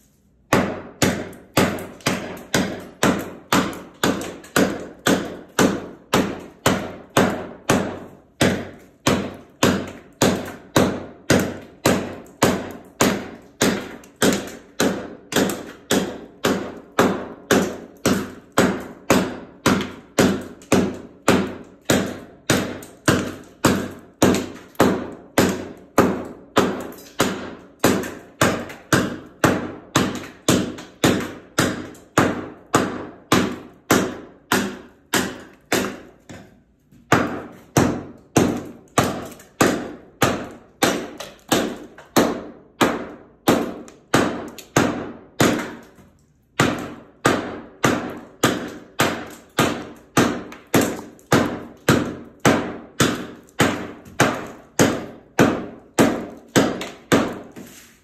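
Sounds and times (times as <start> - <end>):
hatchet striking floor tiles: 0.5 - 58.0.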